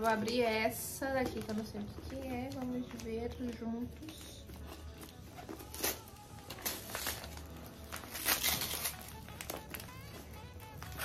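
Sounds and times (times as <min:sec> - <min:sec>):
packaging crinkling and rustling: 0:00.0 - 0:11.0
scissors cutting packaging: 0:01.2 - 0:11.0.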